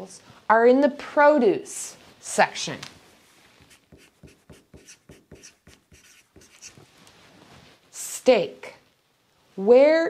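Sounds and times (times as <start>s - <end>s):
marker writing on a whiteboard: 3.7s - 6.9s.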